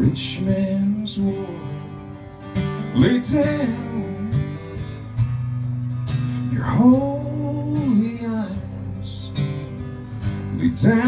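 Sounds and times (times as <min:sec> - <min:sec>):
acoustic guitar chord ringing: 0:00.0 - 0:11.0.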